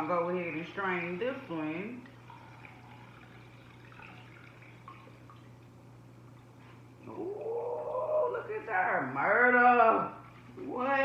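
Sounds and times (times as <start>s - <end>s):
steady low hum: 0.0s - 11.0s
liquid trickling through a strainer: 1.0s - 8.3s
small drips: 1.5s - 8.3s.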